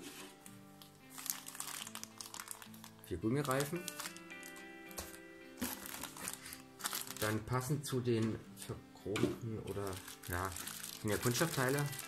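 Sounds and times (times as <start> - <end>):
background music: 0.0 - 12.0
plastic bag crinkling: 0.8 - 7.5, 9.7 - 12.0.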